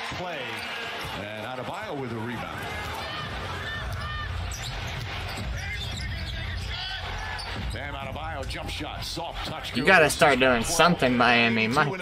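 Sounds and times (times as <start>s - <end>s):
arena crowd noise: 0.0s - 12.0s
sneaker squeaks: 3.6s - 7.8s.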